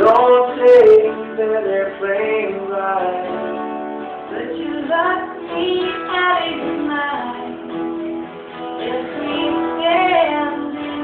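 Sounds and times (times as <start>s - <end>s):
acoustic guitars: 0.0s - 11.0s
woman singing slow song: 4.3s - 11.0s.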